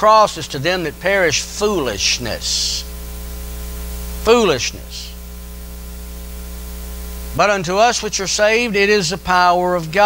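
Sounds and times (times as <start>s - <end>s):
constant hiss: 0.0s - 10.0s
electrical mains hum: 0.0s - 10.0s.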